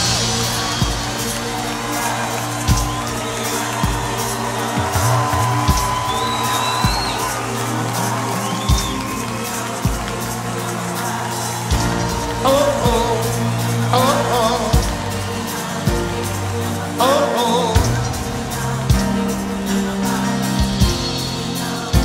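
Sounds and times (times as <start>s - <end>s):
audience cheering: 0.0s - 22.0s
whistle or whoop: 0.1s - 10.0s.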